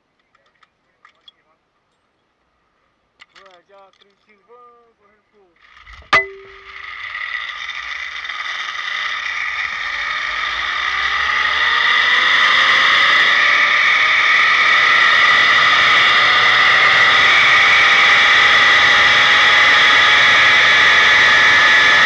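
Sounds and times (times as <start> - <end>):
pulley wheels whining on cable: 5.6 - 22.0.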